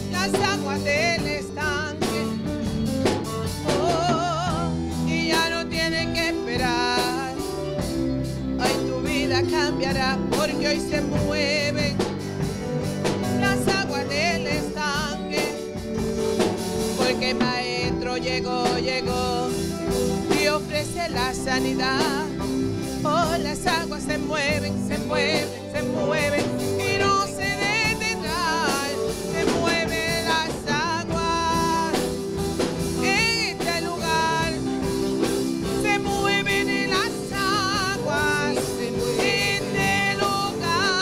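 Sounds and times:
drum kit: 0.0 - 41.0
electric guitar: 0.0 - 41.0
gospel band playing: 0.0 - 41.0
keyboard: 0.0 - 41.0
woman singing with vibrato: 0.0 - 41.0.

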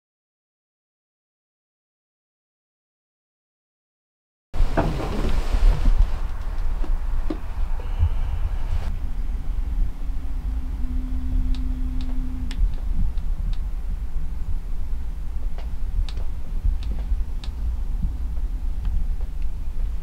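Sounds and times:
faint hum: 4.6 - 20.0
low outdoor rumble: 4.6 - 20.0.

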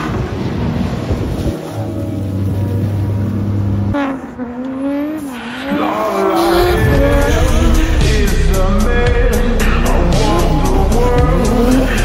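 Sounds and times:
car engine revving hard: 0.0 - 12.0
tyre squeal: 4.0 - 7.0
steady low drone: 5.8 - 12.0.

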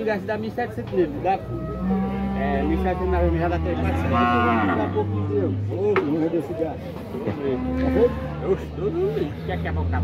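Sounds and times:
cattle mooing: 1.4 - 5.5, 7.3 - 8.7.

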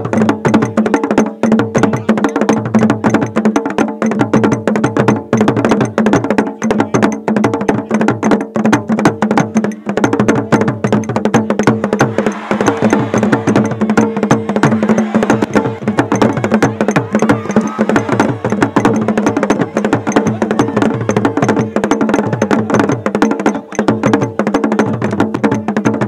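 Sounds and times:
fast drum strikes: 0.0 - 26.0
wood block strikes: 0.0 - 26.0.

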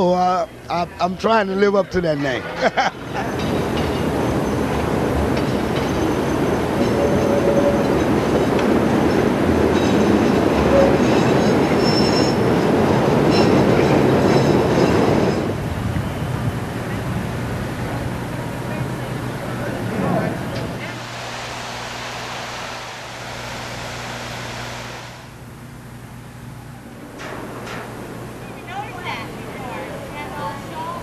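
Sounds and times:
elevated train rumbling past: 2.9 - 31.0
train wheel squeal: 5.4 - 16.3.

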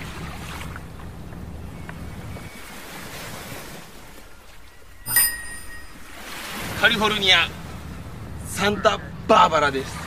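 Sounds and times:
seaside ambience: 0.0 - 10.0.

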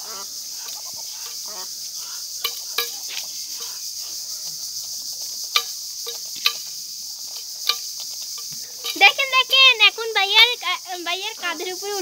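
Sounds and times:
insects droning: 0.0 - 12.0
beak tapping steel bowl: 2.4 - 3.8, 5.4 - 9.6.

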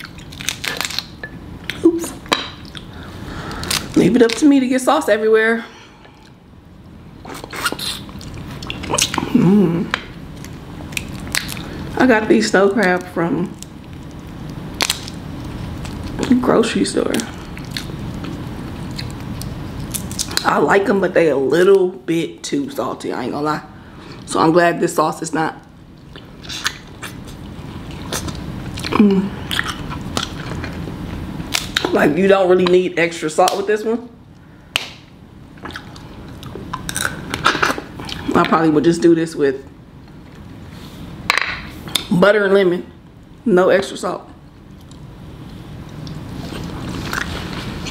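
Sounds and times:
crab shell cracking: 0.0 - 1.8, 13.5 - 16.2, 34.7 - 38.2.

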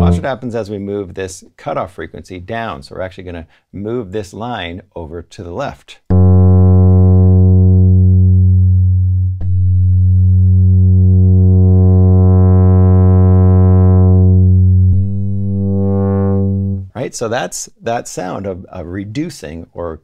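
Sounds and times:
synth bass note with filter sweep: 0.0 - 0.5, 6.1 - 16.9.

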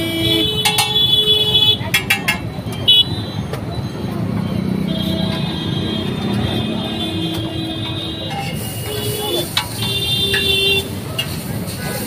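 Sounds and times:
vehicle horn: 0.0 - 1.9, 4.9 - 10.9
street traffic noise: 0.0 - 12.0.

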